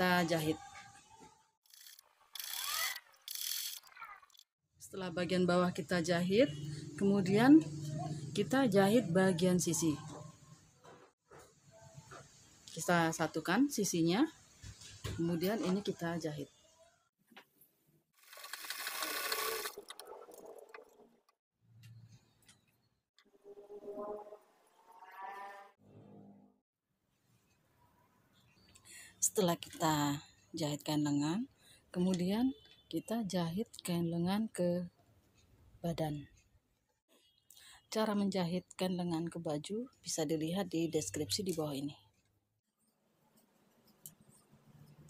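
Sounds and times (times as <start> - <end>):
sewing machine stitching: 18.2 - 20.6.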